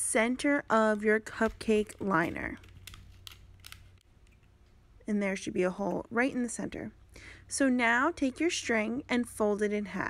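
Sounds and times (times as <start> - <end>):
paper liner crinkling clicks: 1.3 - 4.5.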